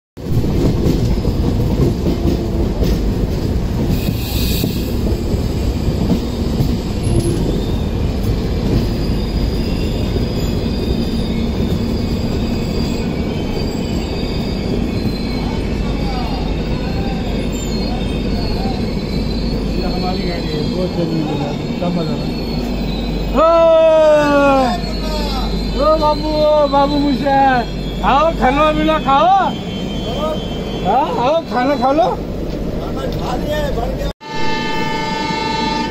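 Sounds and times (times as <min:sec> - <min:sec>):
train wheels rumbling on rails: 0:00.2 - 0:34.1
high wheel squeal: 0:03.8 - 0:35.9.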